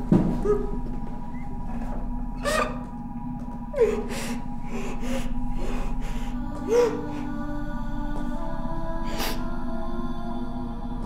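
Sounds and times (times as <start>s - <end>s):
soft background music: 0.0s - 11.0s
woman crying in gasping sobs: 3.7s - 7.4s.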